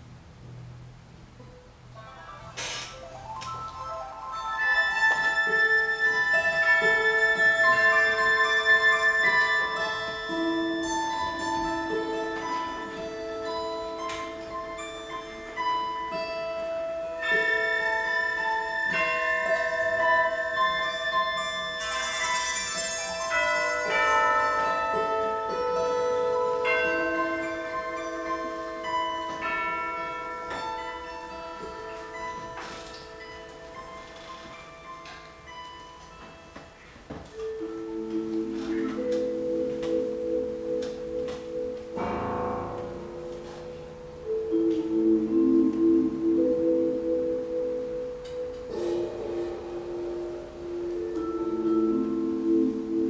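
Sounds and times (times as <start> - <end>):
faint plucked notes: 0.0 - 53.0.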